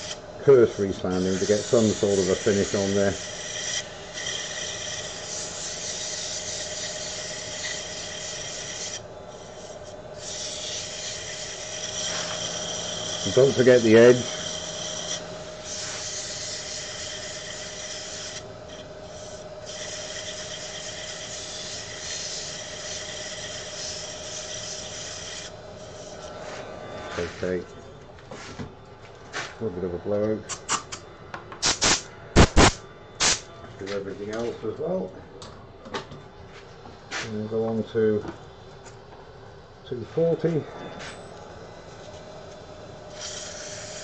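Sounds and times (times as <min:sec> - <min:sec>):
sandpaper sanding wood: 0:00.0 - 0:18.4, 0:19.0 - 0:26.6
wood lathe running: 0:00.0 - 0:27.6.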